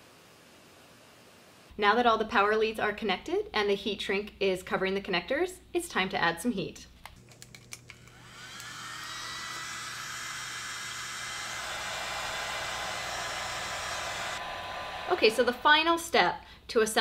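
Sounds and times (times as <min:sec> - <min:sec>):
heat gun fan blowing: 0:07.3 - 0:16.2.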